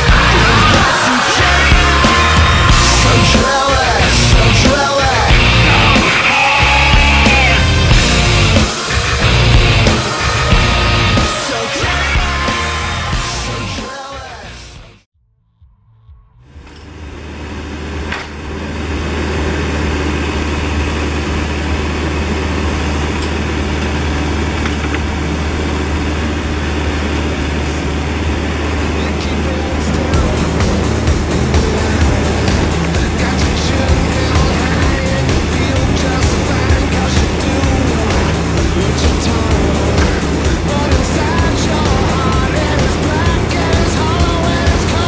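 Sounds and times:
diesel engine droning: 0.0s - 45.0s.

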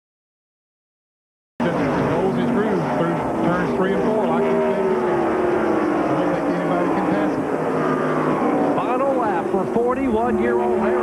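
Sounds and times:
race car engines at speed: 1.6s - 11.0s.

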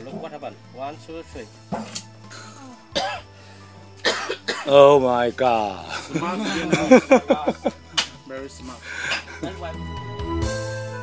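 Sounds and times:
cough-like vocal sound: 1.8s - 3.2s, 4.0s - 4.7s.

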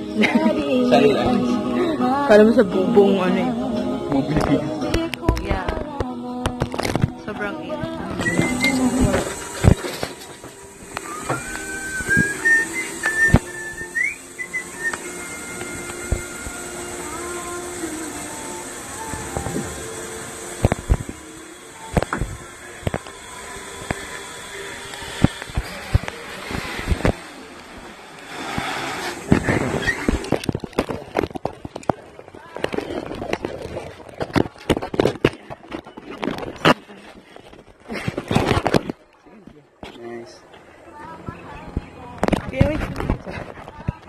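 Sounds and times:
weak wavering tones: 0.0s - 34.1s
zipline pulley whine: 7.8s - 38.8s.

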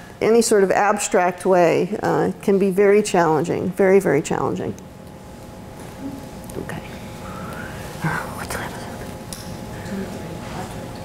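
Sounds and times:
room hum: 0.0s - 11.0s
quiet whispery speech: 6.0s - 9.1s.

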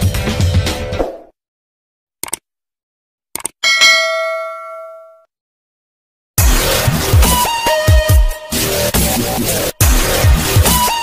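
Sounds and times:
notification bell ding: 3.6s - 5.2s.

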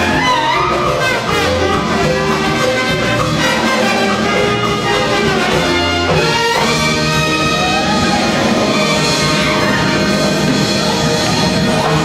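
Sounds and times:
salsa band playing: 0.0s - 12.0s
trumpets and trombones: 0.0s - 12.0s.

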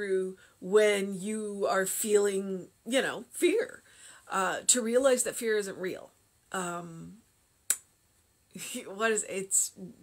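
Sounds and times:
woman speaking: 0.0s - 7.2s, 8.6s - 10.0s.

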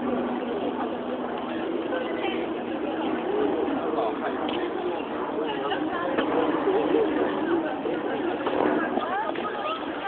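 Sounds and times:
distant voices: 0.0s - 10.0s.

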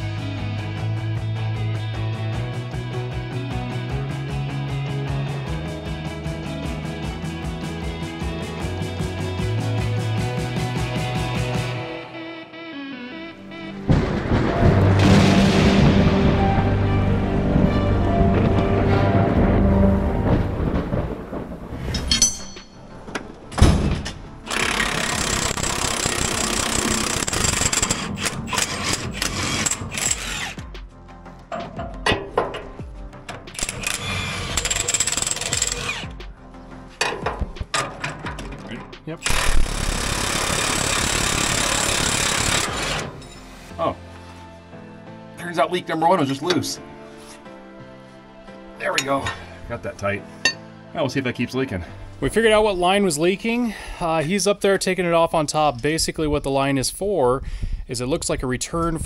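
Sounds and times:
background music: 0.0s - 57.5s
impact wrench hammering on bolts: 24.5s - 30.6s, 33.5s - 36.1s, 39.2s - 43.0s.

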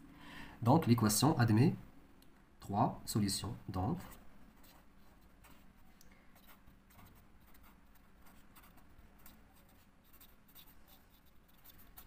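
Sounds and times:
marker writing on paper: 4.0s - 5.8s, 6.4s - 12.0s.

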